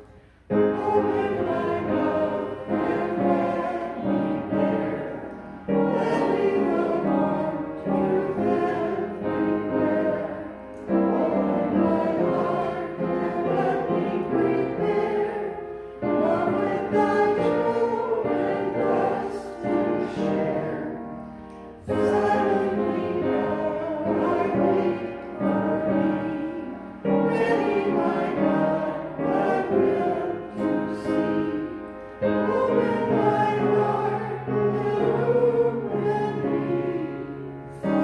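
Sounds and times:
choir singing a hymn: 0.0s - 38.0s.

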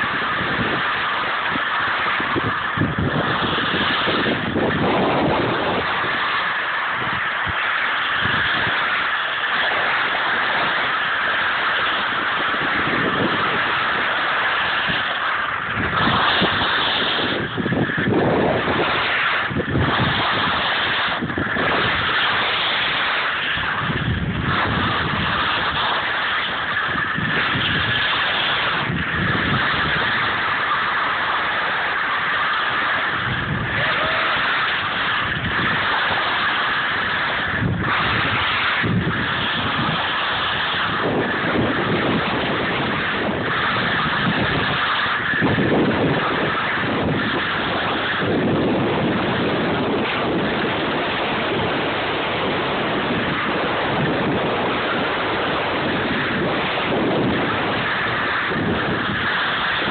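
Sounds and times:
skis sliding over snow: 0.0s - 59.9s
wind on microphone: 0.0s - 59.9s.

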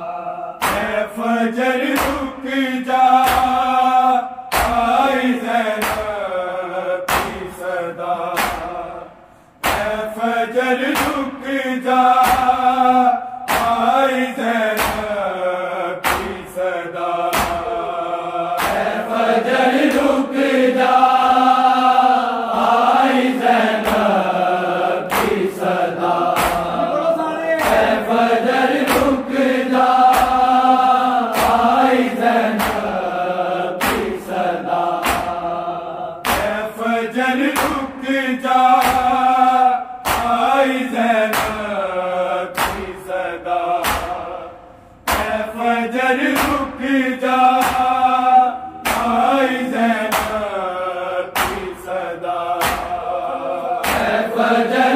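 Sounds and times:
men chanting a lament: 0.0s - 54.9s
rhythmic chest slapping: 0.0s - 54.9s.

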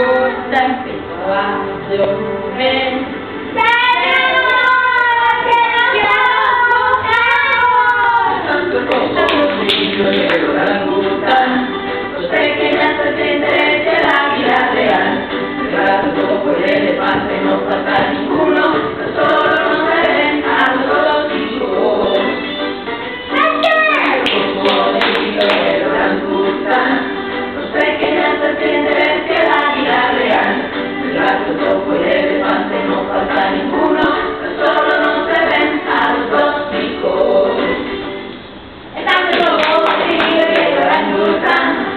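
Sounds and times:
class singing in chorus: 0.0s - 22.7s, 24.1s - 38.2s, 39.0s - 41.9s.

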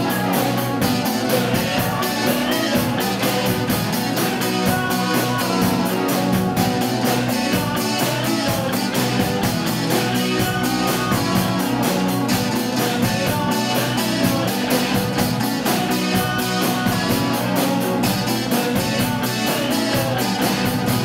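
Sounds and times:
drum and cymbal beat: 0.0s - 21.0s
electric guitars: 0.0s - 21.0s.

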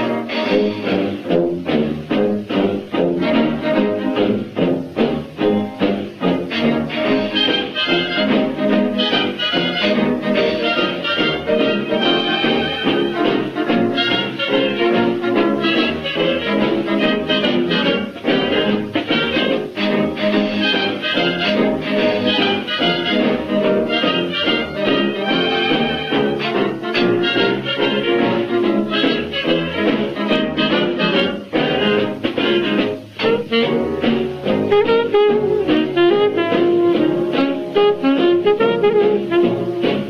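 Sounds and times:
jazz dance band with brass: 0.0s - 40.0s.

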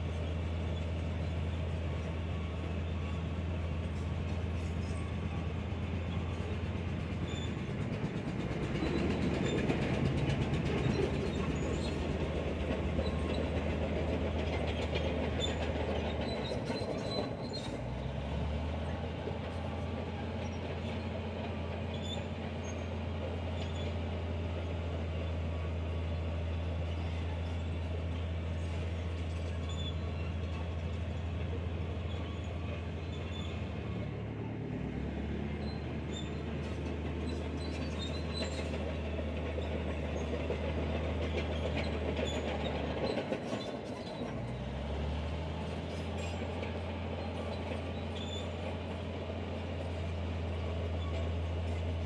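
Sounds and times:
diesel engine under load: 0.0s - 52.0s
steel tracks clanking and squealing: 0.0s - 52.0s.

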